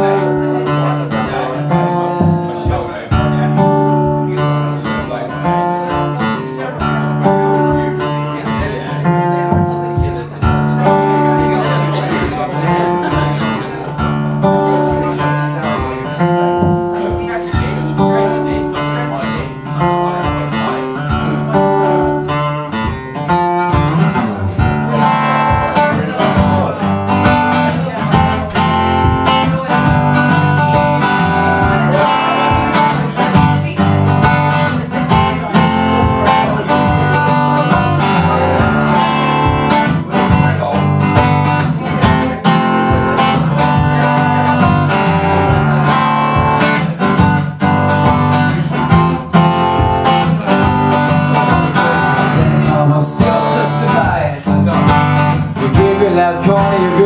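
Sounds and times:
acoustic guitar blues: 0.0 - 57.0.

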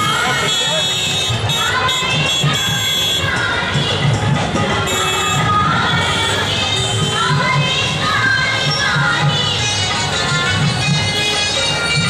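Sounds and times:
crowd noise: 0.0 - 12.0
music playing: 3.0 - 12.0.

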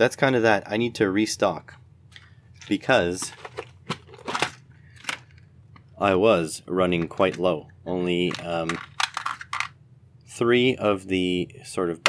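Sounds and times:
plastic box rustle: 2.1 - 5.4, 8.2 - 9.7.

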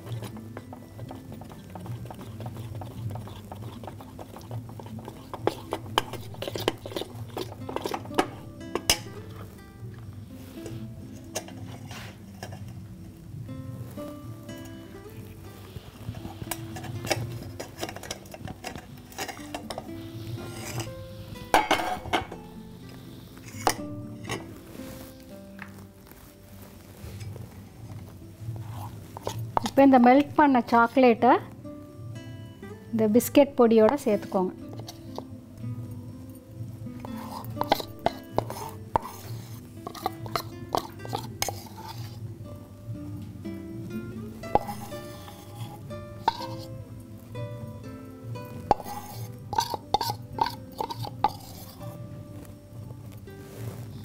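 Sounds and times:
utensil scraping metal bowl: 0.0 - 9.6, 10.3 - 12.8, 14.5 - 25.2, 28.6 - 29.9, 33.8 - 35.3, 36.9 - 42.3, 44.4 - 46.9, 48.4 - 52.0
background music: 0.0 - 54.0
knocks on metal bowl: 21.6 - 22.4.

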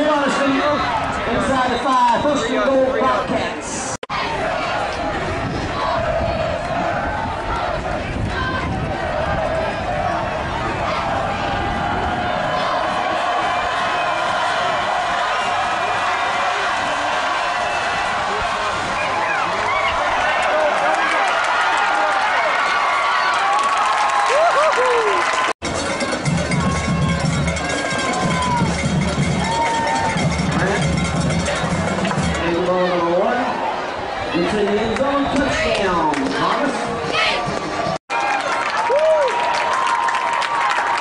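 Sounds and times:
crowd shouting and cheering: 0.0 - 41.0.

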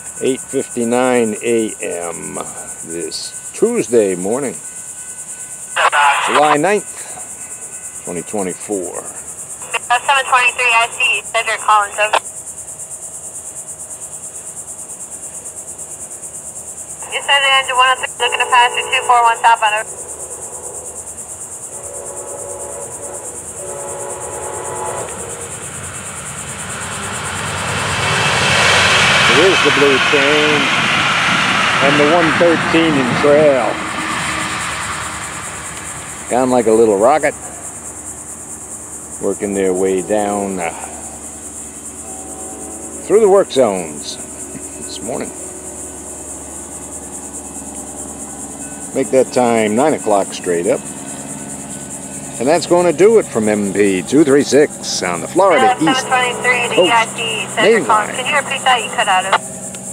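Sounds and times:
faint low hum: 0.0 - 4.7, 52.4 - 59.4
train rumble: 0.0 - 12.2, 16.9 - 59.9
insects buzzing: 0.0 - 59.9
train horn blasts: 21.7 - 27.7, 42.0 - 43.7.

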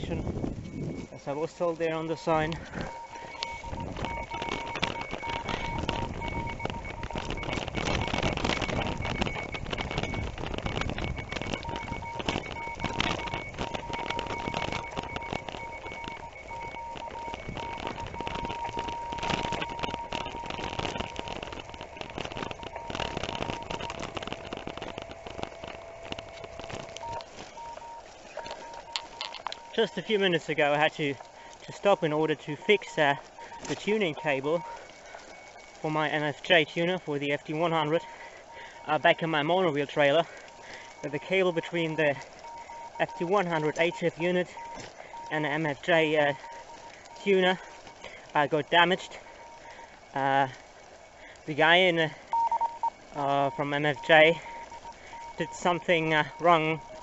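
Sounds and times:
bicycle tyres on gravel: 0.0 - 57.0
bike rattling: 0.0 - 57.0
lower radio tone: 0.0 - 57.0
radio whistle tone: 0.0 - 57.0.

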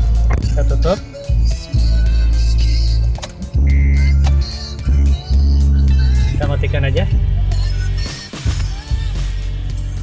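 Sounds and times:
radio music with heavy bass: 0.0 - 10.0.

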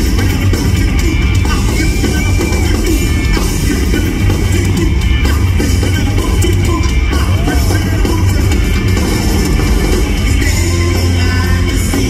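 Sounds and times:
bass guitar: 0.0 - 12.0
drum kit: 0.0 - 12.0
electric guitar: 0.0 - 12.0
rock band playing live: 0.0 - 12.0.

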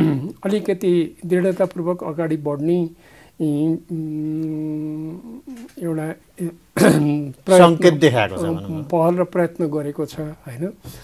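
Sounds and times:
man humming hesitantly: 0.0 - 0.4
man speaking: 0.0 - 10.8.

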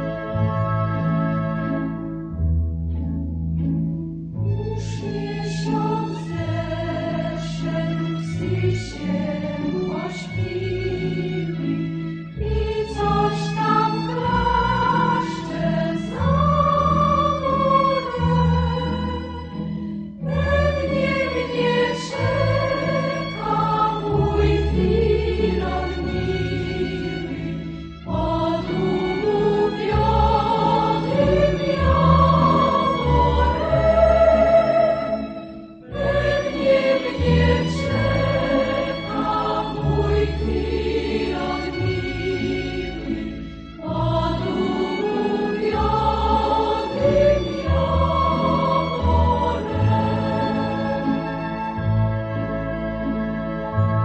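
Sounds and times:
choir singing: 0.0 - 2.1, 4.7 - 19.6, 20.2 - 54.0
instrumental accompaniment: 0.0 - 54.0.

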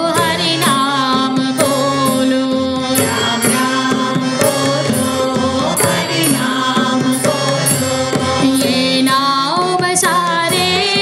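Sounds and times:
harmonium: 0.0 - 11.0
tabla and dholak drumming: 0.0 - 11.0
woman singing: 0.0 - 11.0.

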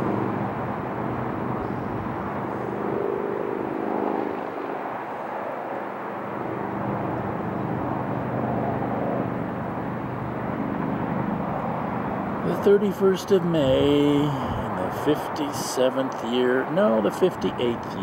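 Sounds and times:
engine drone: 0.0 - 18.0.

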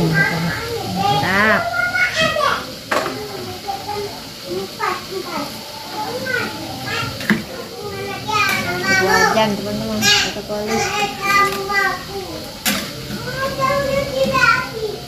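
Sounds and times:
children chattering and calling out: 0.0 - 15.0.

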